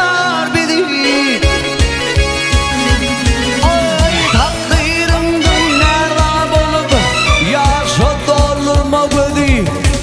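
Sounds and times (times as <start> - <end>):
folk-pop electronic keyboards: 0.0 - 10.0
heavy kick-drum beat: 1.8 - 10.0.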